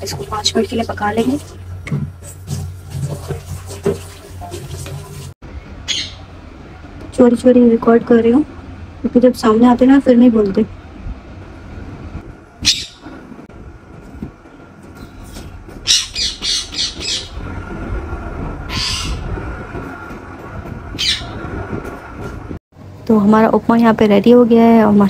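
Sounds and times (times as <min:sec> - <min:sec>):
low steady background rumble: 0:00.0 - 0:25.0
parrots squawking: 0:05.8 - 0:06.3, 0:12.6 - 0:13.1, 0:15.8 - 0:17.4, 0:18.7 - 0:19.2, 0:21.0 - 0:21.4.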